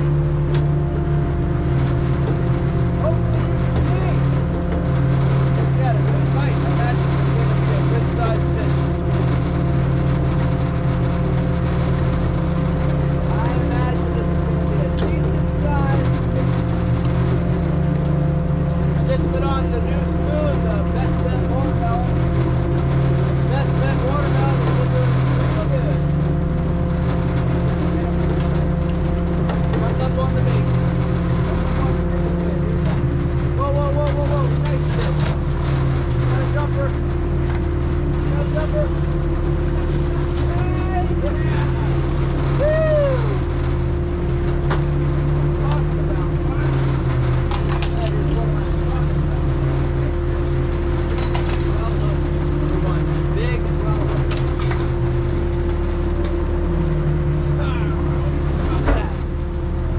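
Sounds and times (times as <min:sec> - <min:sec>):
boat engine droning: 0:00.0 - 0:59.9
hydraulic hum: 0:00.0 - 0:59.9.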